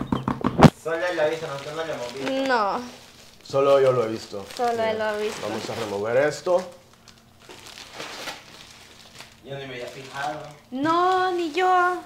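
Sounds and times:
bubble wrap crinkling: 0.7 - 12.0.

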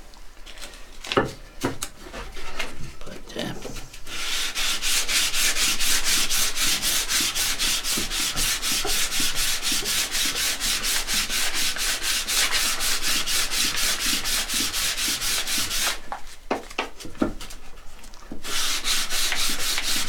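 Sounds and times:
sandpaper rubbing on wood: 4.1 - 16.0, 18.4 - 20.0.

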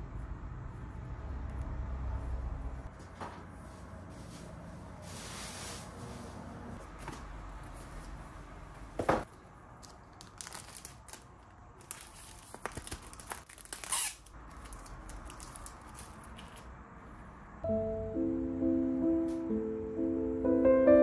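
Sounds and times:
paper rustling and crinkling: 9.8 - 16.7
soft piano music: 17.6 - 21.0.

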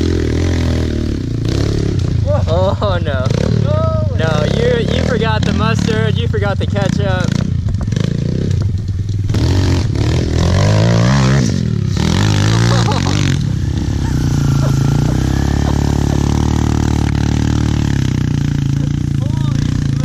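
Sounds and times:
motorcycle engine revving: 0.0 - 20.0.

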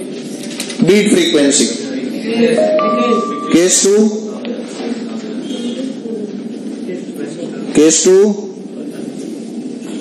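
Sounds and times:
murmur of students chattering: 1.5 - 10.0.

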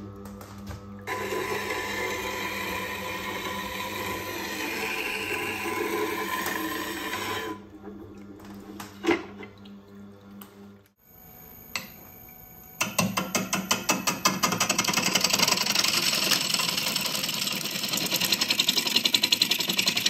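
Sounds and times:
gouge grinding on sharpener wheel: 1.1 - 7.6.

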